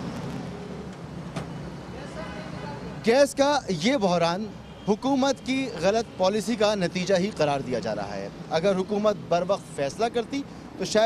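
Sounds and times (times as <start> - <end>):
vehicle engines humming: 0.0 - 11.0.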